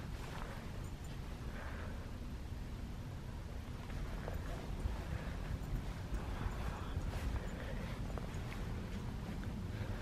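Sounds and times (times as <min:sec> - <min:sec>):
footsteps: 0:00.0 - 0:01.4, 0:03.7 - 0:10.0.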